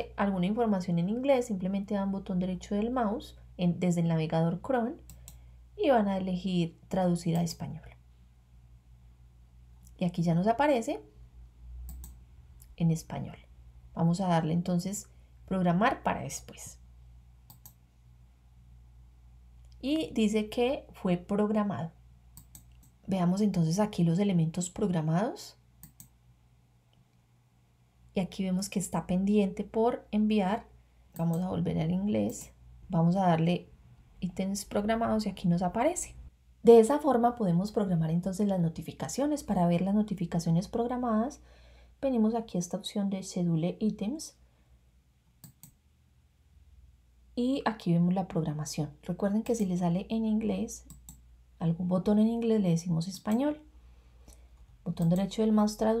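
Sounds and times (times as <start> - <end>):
faint low hum: 0.0 - 56.0
computer mouse clicks: 5.0 - 5.5, 7.3 - 7.6, 11.8 - 12.7, 17.4 - 17.8, 22.3 - 23.0, 25.8 - 26.2, 31.2 - 31.5, 32.2 - 32.6, 45.4 - 45.8, 50.8 - 51.3, 54.2 - 55.4.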